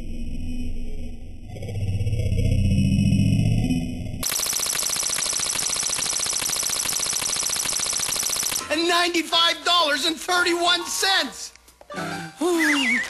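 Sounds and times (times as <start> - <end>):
harsh rapidly pulsing buzz: 4.2 - 8.7.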